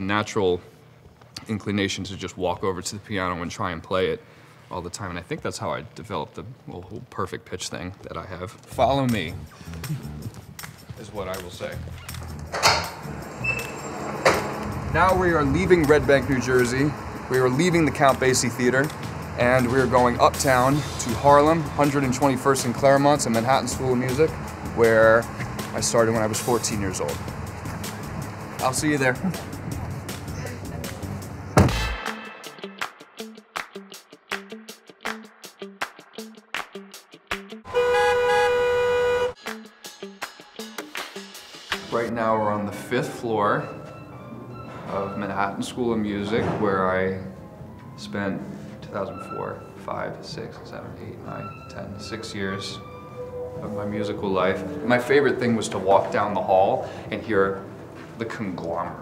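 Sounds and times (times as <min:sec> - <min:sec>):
background music with steady beat: 0:08.6 - 0:46.2
low rumble of street traffic: 0:11.0 - 0:31.6
vehicle horn blast: 0:37.7 - 0:39.4.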